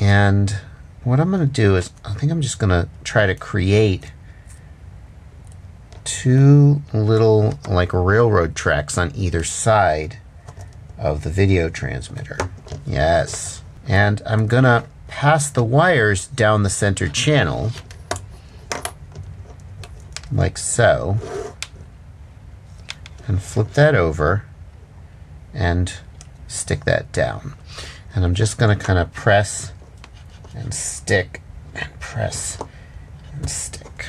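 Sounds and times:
low steady hum: 0:00.0 - 0:34.0
fingers handling small electronics: 0:10.4 - 0:11.0, 0:17.0 - 0:20.4, 0:22.7 - 0:23.3, 0:29.7 - 0:31.0.

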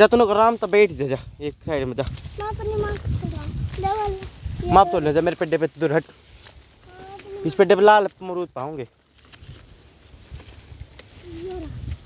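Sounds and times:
wind rumble on microphone: 0:00.0 - 0:05.4, 0:09.3 - 0:12.0
microphone handling noise: 0:00.9 - 0:05.4.

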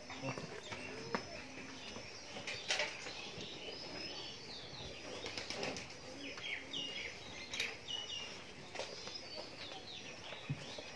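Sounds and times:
small birds chirping: 0:00.0 - 0:10.9.

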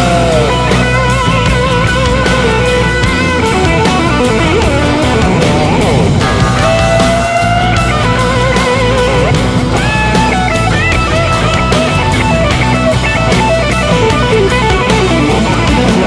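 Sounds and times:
bass: 0:00.0 - 0:16.0
drum beat: 0:00.0 - 0:16.0
electric guitar lead: 0:00.0 - 0:16.0.

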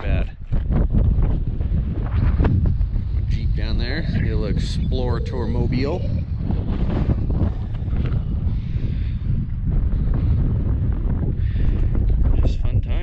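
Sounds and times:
wind buffeting microphone: 0:00.0 - 0:13.0.

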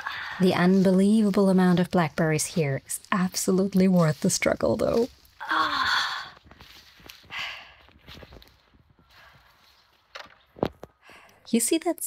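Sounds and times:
woman sighing: 0:05.4 - 0:06.4.

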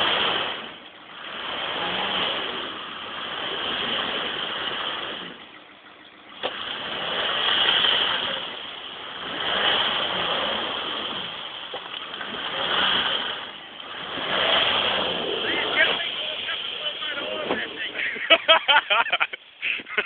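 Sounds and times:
off-road engine revving in mud: 0:00.0 - 0:20.0.

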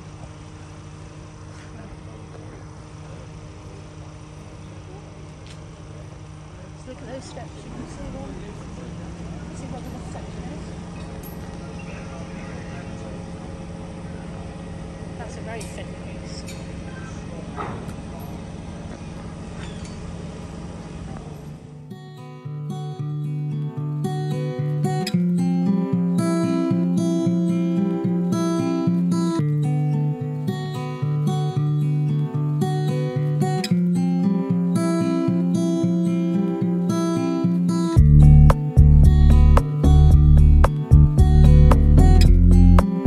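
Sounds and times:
steady low hum: 0:00.0 - 0:43.0
plucked acoustic guitar music: 0:21.5 - 0:43.0
heavy bass notes: 0:38.0 - 0:43.0.

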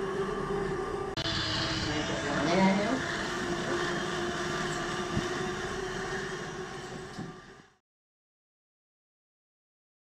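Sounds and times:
bicycle on rollers whirring: 0:01.2 - 0:07.8.

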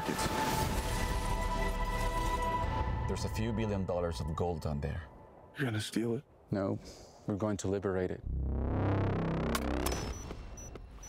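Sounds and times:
deep bass rumble: 0:08.2 - 0:09.9
synthesized tone sweeping upward: 0:08.3 - 0:10.3.

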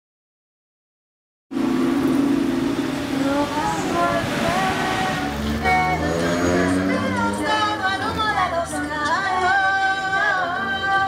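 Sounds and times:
street traffic noise: 0:01.5 - 0:11.0
vehicle engine droning: 0:01.5 - 0:11.0.

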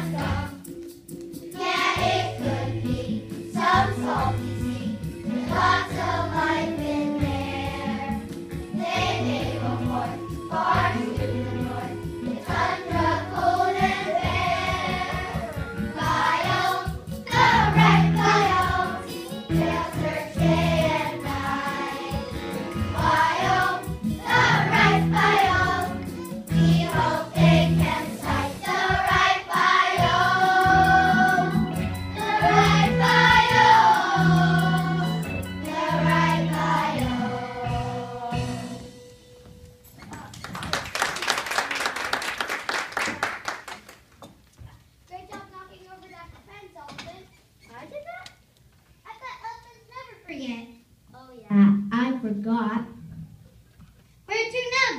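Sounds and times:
children singing in chorus: 0:08.8 - 0:25.9.

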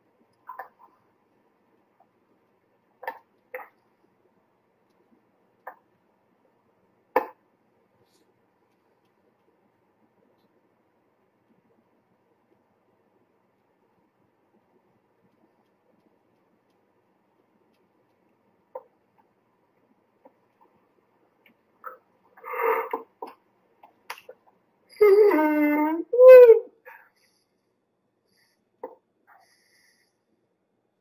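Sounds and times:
faint clicks: 0:15.2 - 0:17.0.

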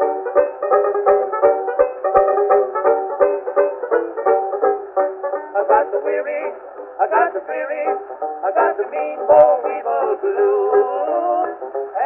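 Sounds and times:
strummed banjo: 0:00.0 - 0:12.0.

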